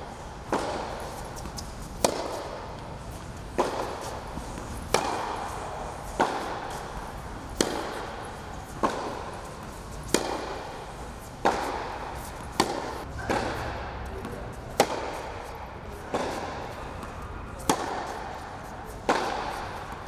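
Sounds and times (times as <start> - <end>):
tennis balls struck by rackets: 0.0 - 20.0.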